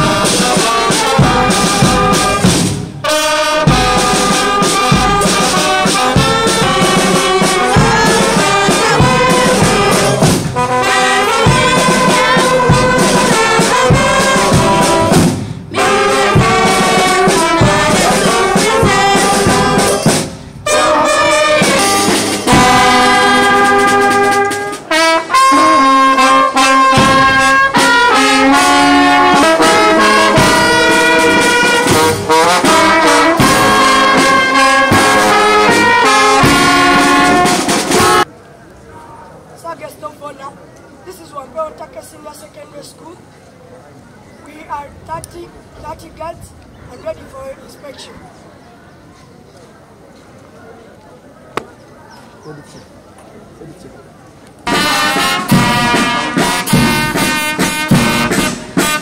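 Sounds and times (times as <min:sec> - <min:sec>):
brass marching band: 0:00.0 - 0:38.3, 0:54.6 - 0:59.0
faint voices: 0:03.8 - 0:59.0.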